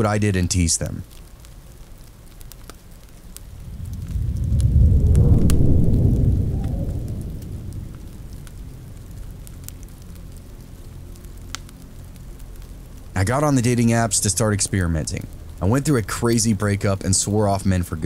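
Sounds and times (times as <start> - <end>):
fireplace crackling: 0.0 - 18.0
steady rain: 0.0 - 18.0
thunder rumble: 3.3 - 11.4.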